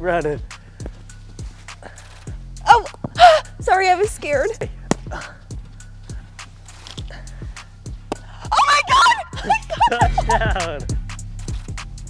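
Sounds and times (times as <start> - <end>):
background music with steady beat: 0.0 - 12.0
woman gasping: 3.1 - 3.6, 5.1 - 5.5
woman's high-pitched exclamations: 8.5 - 9.7.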